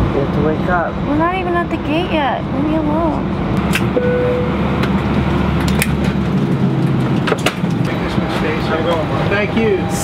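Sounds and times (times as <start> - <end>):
airliner cabin hum: 2.8 - 10.0.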